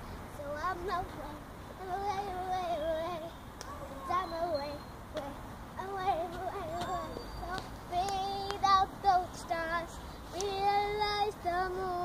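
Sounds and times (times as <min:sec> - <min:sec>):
girl singing unaccompanied: 0:00.0 - 0:12.0.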